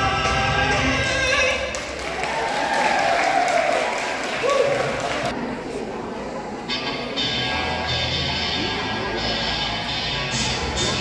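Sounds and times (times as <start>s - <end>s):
audience applauding: 1.7s - 5.3s.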